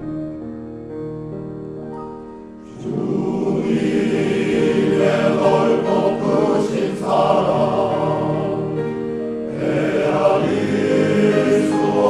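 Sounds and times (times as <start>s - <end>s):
grand piano: 0.0s - 12.0s
men's choir singing: 2.7s - 12.0s.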